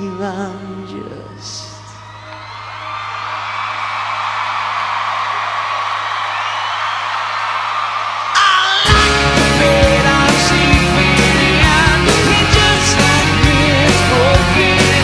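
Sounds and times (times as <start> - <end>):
crowd cheering and whooping: 1.7 - 12.6
rock band playing: 8.3 - 15.0.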